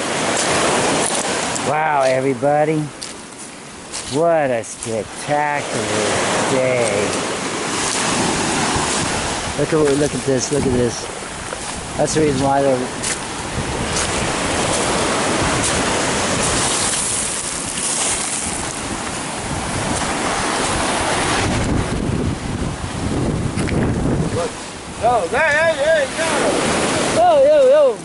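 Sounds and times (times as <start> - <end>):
surf washing on pebbles: 0.0 - 28.0
wind on microphone: 2.9 - 28.0.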